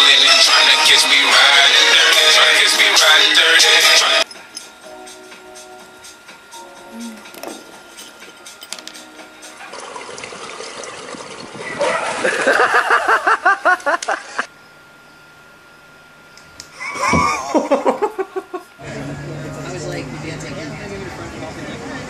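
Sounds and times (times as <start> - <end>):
water splashing in a pool: 9.7 - 12.6
person laughing loudly: 11.8 - 14.5, 16.7 - 18.7.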